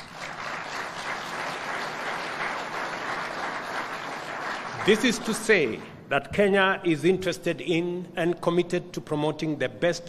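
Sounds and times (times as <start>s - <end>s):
audience applause: 0.0s - 5.9s.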